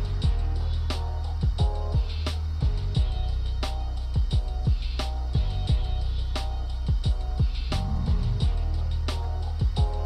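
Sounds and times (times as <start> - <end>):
low bass line: 0.0 - 10.0
deep kick drum hits: 1.4 - 3.2, 4.2 - 5.9, 6.9 - 8.8, 9.6 - 10.0.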